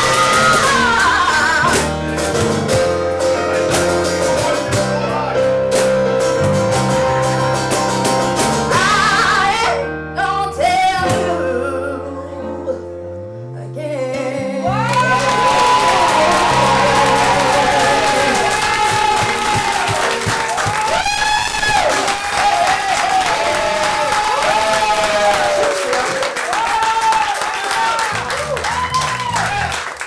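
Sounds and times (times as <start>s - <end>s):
audience applause and cheering: 14.8s - 30.0s.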